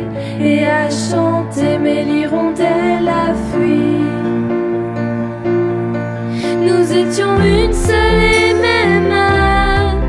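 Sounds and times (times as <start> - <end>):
sustained instrumental accompaniment: 0.0 - 10.0
person singing: 6.4 - 10.0.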